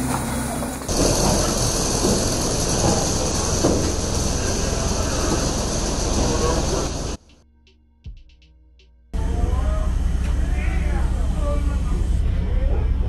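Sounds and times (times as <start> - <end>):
jet aircraft roar: 0.0 - 7.2
high whine: 0.0 - 7.4
low cabin hum: 0.0 - 7.4.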